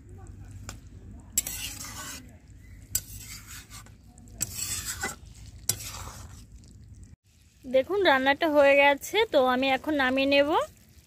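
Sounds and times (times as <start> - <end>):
curry sizzling: 0.0 - 11.0
metal spatula scraping iron pan: 1.3 - 6.5.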